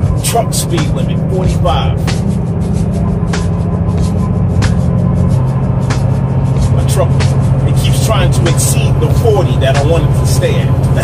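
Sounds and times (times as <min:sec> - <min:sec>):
truck diesel engine droning: 0:00.0 - 0:11.0.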